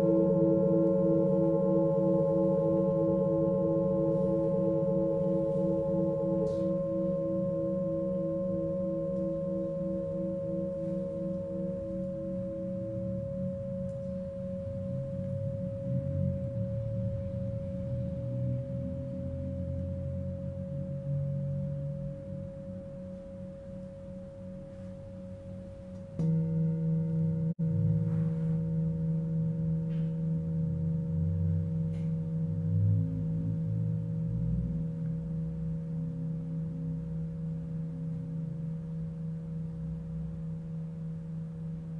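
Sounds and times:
mallet striking bowl: 0.0s - 9.5s, 26.0s - 30.8s
singing bowls ringing: 0.0s - 32.9s.

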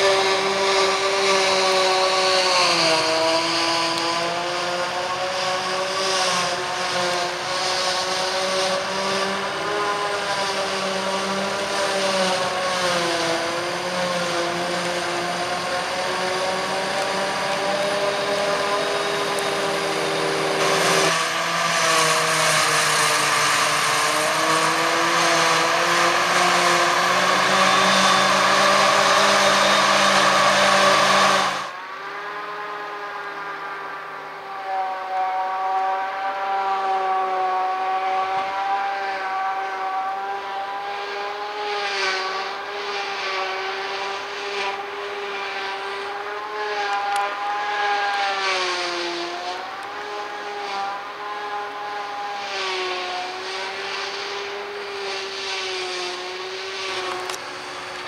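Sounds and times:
forage harvester chopping grass: 0.0s - 31.7s, 51.9s - 58.0s
tractor running: 0.0s - 31.8s, 42.3s - 58.0s.

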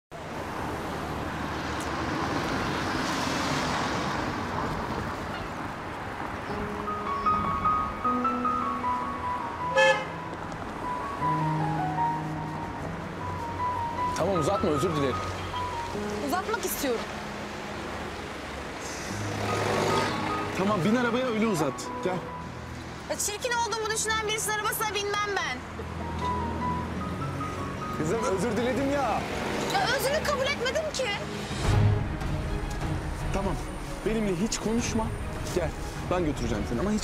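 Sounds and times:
cars driving along street: 0.1s - 37.0s
music with sustained notes: 6.3s - 37.0s.

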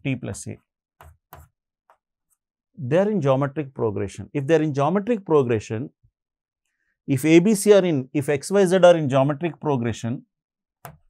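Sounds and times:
man speaking: 0.0s - 0.6s, 2.8s - 5.9s, 7.1s - 10.2s
marker pen writing on whiteboard: 0.3s - 2.4s.

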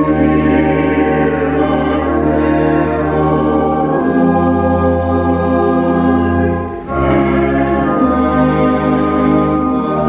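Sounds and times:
organ chords: 0.0s - 10.0s
voices singing a hymn: 0.0s - 10.0s.

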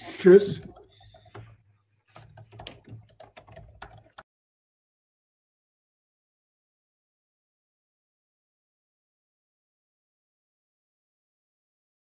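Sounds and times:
keyboard key clicks: 2.1s - 4.2s.

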